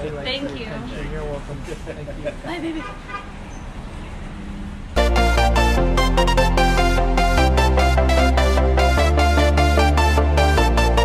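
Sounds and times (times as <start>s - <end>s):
passing cars rumble: 0.0s - 9.0s
loud electronic music: 5.0s - 11.0s.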